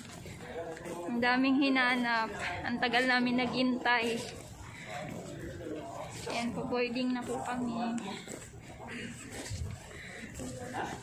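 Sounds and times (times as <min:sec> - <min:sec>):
faint background voices: 0:00.0 - 0:11.0.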